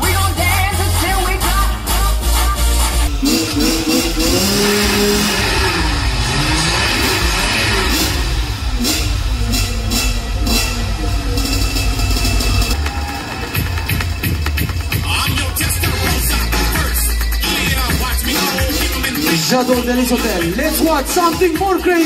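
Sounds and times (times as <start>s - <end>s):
loud show music: 0.0s - 22.0s
motorcycle engines revving: 2.8s - 22.0s.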